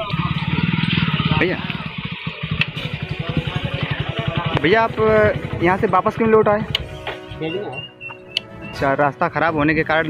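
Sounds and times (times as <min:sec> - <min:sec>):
motorcycle engine idling: 0:00.0 - 0:07.7.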